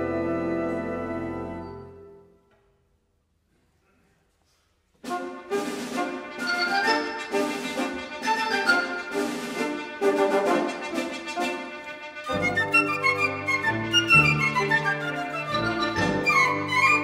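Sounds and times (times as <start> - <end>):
wind band playing: 0.0 - 2.3, 5.0 - 17.0.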